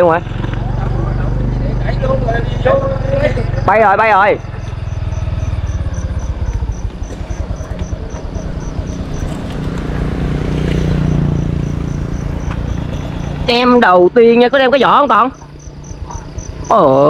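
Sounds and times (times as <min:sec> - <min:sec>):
low engine rumble: 0:00.0 - 0:17.0
insect chirping: 0:00.5 - 0:17.0.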